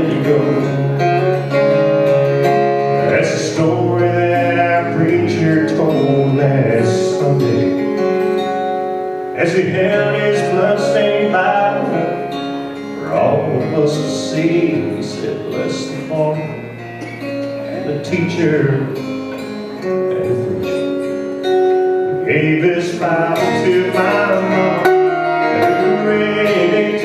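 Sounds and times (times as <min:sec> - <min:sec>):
man singing: 0:00.0 - 0:01.0, 0:03.0 - 0:07.9, 0:09.3 - 0:12.4, 0:13.0 - 0:16.8, 0:17.7 - 0:19.0, 0:22.1 - 0:27.0
strummed acoustic guitar: 0:00.0 - 0:27.0.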